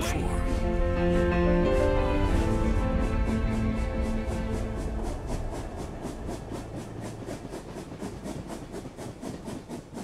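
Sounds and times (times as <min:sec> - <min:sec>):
train wheels clattering on rails: 0:01.7 - 0:10.0.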